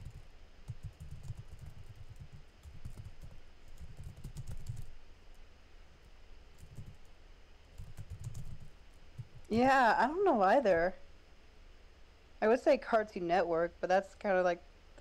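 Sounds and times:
typing on computer keyboard: 0:00.0 - 0:04.9, 0:06.6 - 0:07.1, 0:07.7 - 0:09.5.

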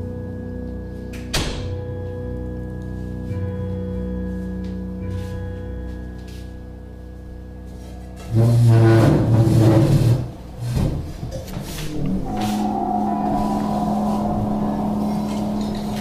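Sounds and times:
steady low drone: 0:00.0 - 0:16.0
loud low rumbling: 0:11.8 - 0:16.0
higher held tone: 0:11.9 - 0:16.0.

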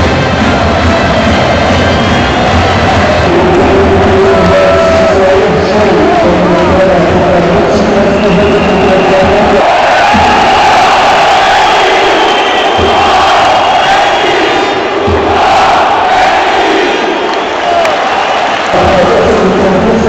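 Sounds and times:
music playing: 0:00.0 - 0:11.6
crowd cheering and chanting: 0:00.0 - 0:20.0.

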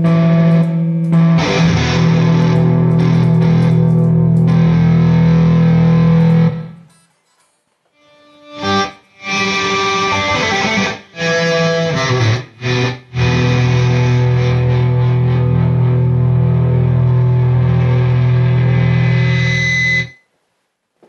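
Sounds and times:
electric guitar chords: 0:00.0 - 0:06.9, 0:08.0 - 0:20.2.

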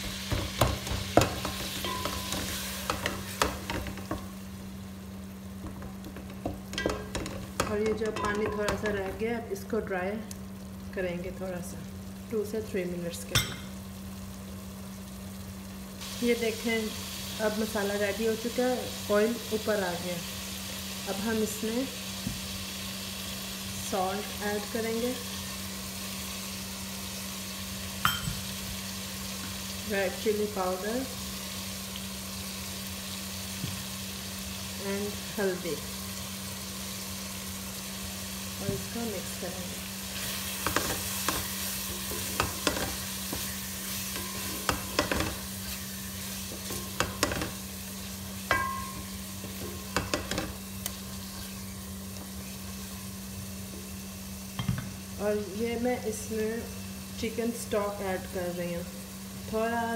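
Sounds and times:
spatula knocking and scraping pot: 0:00.0 - 0:04.3, 0:05.6 - 0:09.2, 0:40.6 - 0:45.8, 0:46.4 - 0:47.6, 0:48.4 - 0:51.6
masala sizzling in oil: 0:00.0 - 0:59.9.

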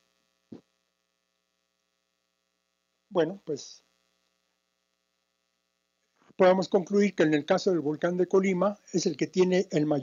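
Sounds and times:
faint electrical mains hum: 0:00.0 - 0:10.0.

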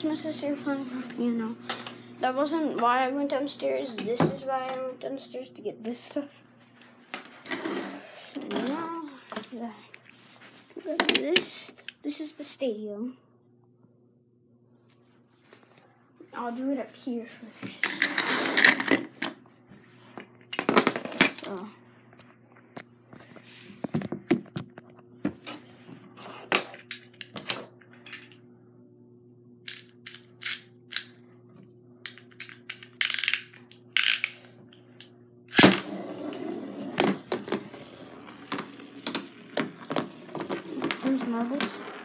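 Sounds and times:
marbles and toys clattering on wood: 0:37.0 - 0:42.0.

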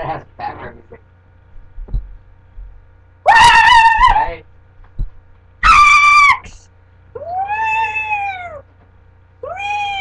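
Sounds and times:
cat meowing: 0:07.2 - 0:08.6, 0:09.4 - 0:10.0.

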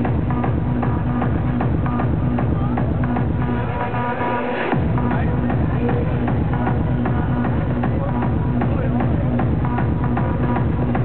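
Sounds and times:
loud hardstyle music: 0:00.0 - 0:11.0.

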